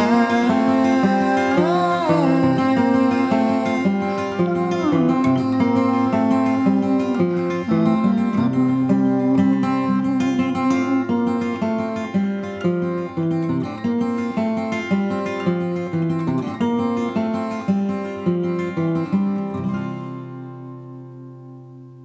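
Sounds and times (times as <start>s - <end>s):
acoustic guitar picking: 0.0s - 22.0s.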